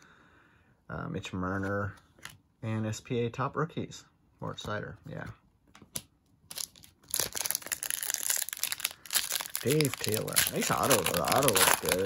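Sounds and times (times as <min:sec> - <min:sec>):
foil wrapper crinkling: 0:06.5 - 0:12.0.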